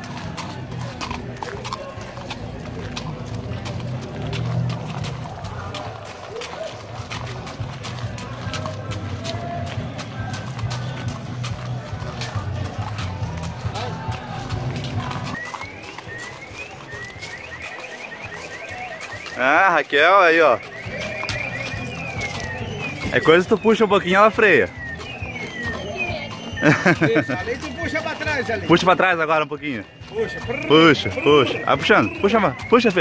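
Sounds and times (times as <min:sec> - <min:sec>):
hooves on gravel: 0:00.0 - 0:33.0.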